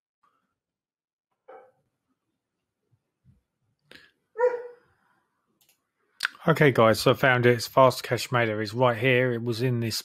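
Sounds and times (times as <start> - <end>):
dog barking: 4.4 - 4.8.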